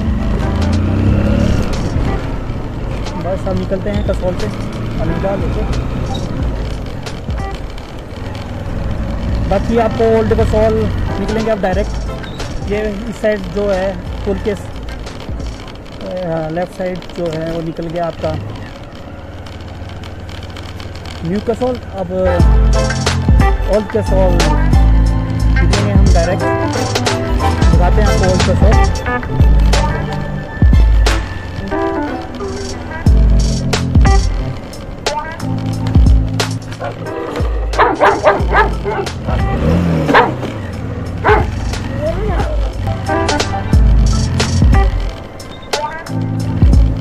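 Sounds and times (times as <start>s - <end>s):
background music with bass beat: 0.0s - 2.4s, 9.5s - 15.8s, 22.3s - 47.0s
motorcycle engine running: 0.0s - 47.0s
wind and road noise: 0.0s - 47.0s
puppy barking: 36.7s - 40.6s, 41.2s - 41.8s.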